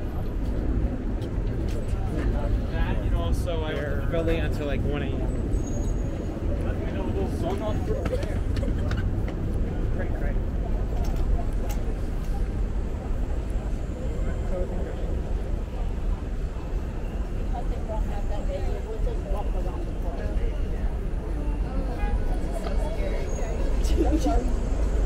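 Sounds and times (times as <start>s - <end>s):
low rumble of traffic: 0.0s - 25.0s
people talking: 1.6s - 5.4s, 6.4s - 25.0s.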